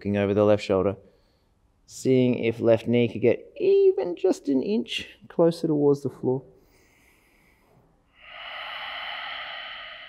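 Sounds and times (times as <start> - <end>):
person exhaling through mouth: 6.8 - 10.0.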